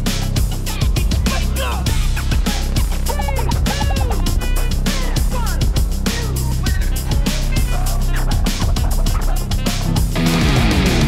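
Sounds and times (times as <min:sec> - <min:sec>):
distorted electric guitar riff: 0:00.0 - 0:11.0
drums and bass: 0:00.0 - 0:11.0
warbling high guitar notes: 0:10.2 - 0:11.0.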